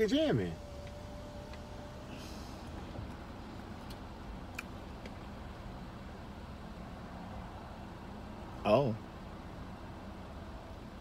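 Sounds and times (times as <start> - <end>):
car engines idling: 0.0 - 11.0.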